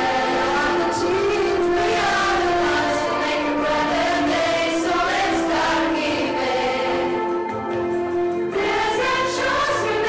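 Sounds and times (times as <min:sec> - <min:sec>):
vocal group singing into microphones: 0:00.0 - 0:07.6, 0:08.2 - 0:10.0.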